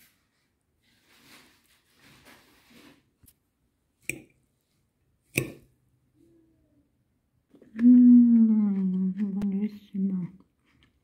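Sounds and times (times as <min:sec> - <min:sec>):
person humming: 0:07.7 - 0:09.2.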